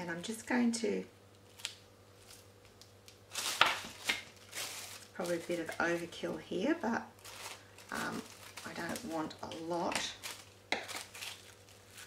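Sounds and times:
adhesive sheet rustling and crinkling: 1.4s - 6.2s, 7.1s - 12.0s.

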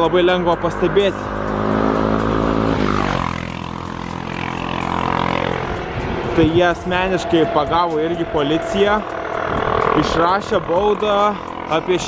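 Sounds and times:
vehicle engine passing: 0.0s - 12.0s.

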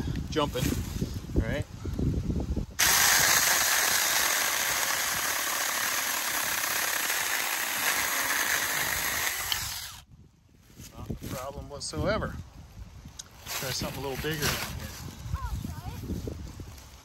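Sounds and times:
electric chainsaw cutting branch: 2.8s - 10.0s.

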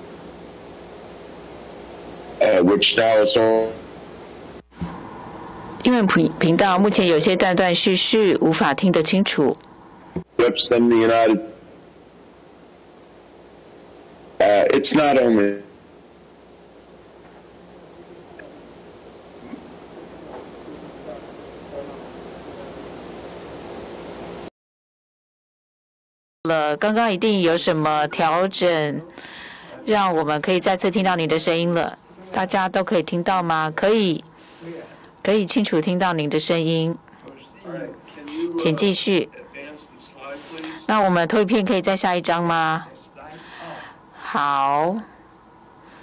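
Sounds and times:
faint low hum: 0.0s - 24.2s
steady noise hiss: 0.0s - 24.5s, 26.5s - 46.0s.

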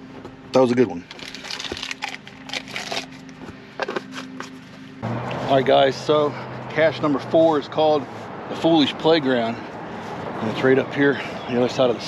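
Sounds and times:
rustling and crinkling: 0.1s - 5.0s.

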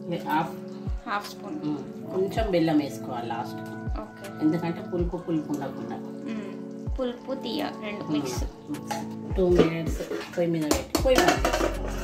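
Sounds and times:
background music: 0.0s - 12.0s
curry simmering and bubbling: 3.2s - 10.4s.

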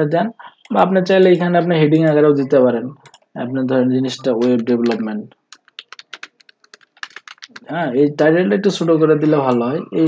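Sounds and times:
person speaking: 0.0s - 10.0s
computer keyboard typing: 4.3s - 7.7s.

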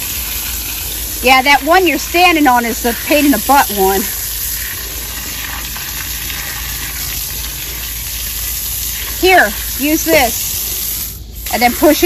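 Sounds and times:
garden hose spraying water: 0.0s - 12.0s.

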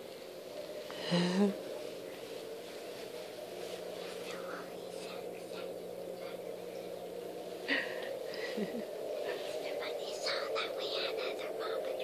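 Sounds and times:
girl laughing: 7.7s - 9.0s.

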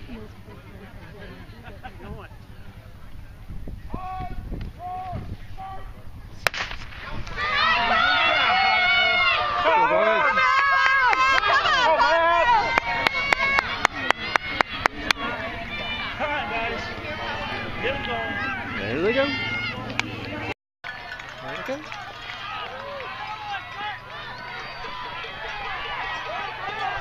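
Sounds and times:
spectators cheering and shouting: 3.9s - 5.9s, 6.9s - 27.0s
starting pistol shot: 6.4s - 7.3s.

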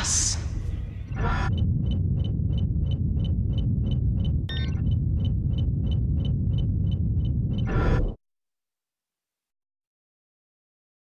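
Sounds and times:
deep steady rumble: 0.0s - 8.2s
bright electronic chirp: 1.1s - 7.9s
pulsing high beep: 1.2s - 8.1s.

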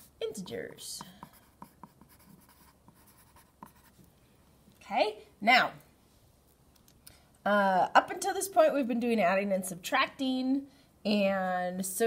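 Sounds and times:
pencil scratching on paper: 1.0s - 4.0s.

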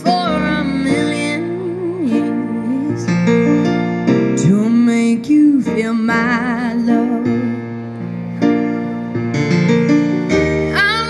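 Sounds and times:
woman singing a ballad: 0.0s - 3.3s, 4.4s - 7.6s, 10.7s - 11.0s
electric keyboard chords: 0.0s - 11.0s.

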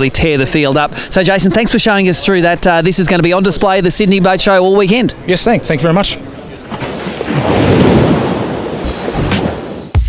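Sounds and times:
rushing ocean waves: 6.2s - 10.0s
music: 8.8s - 10.0s.

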